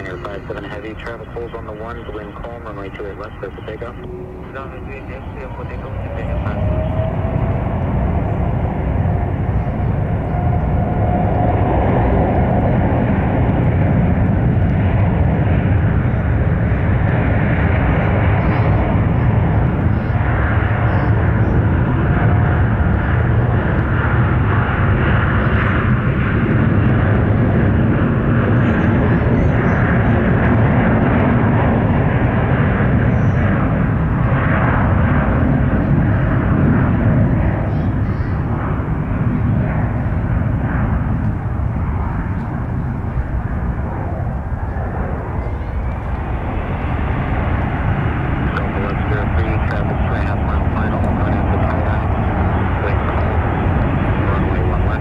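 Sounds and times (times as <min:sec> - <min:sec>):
jet engines at takeoff thrust: 0:00.0 - 0:55.0.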